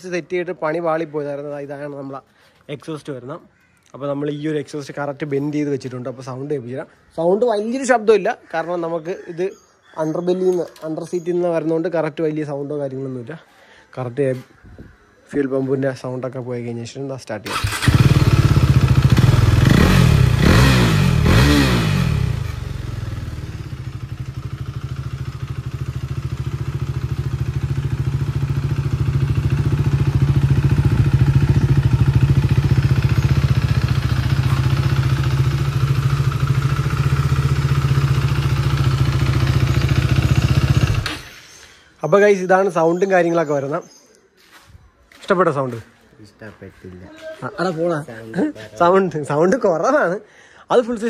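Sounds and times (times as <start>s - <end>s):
motorcycle engine revving and idling: 17.5s - 41.4s.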